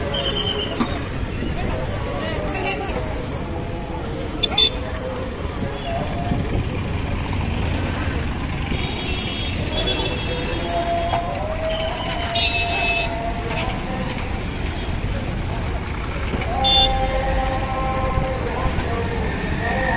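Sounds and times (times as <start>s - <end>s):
crowd talking: 0.0s - 19.9s
vehicle engines running: 0.0s - 19.9s.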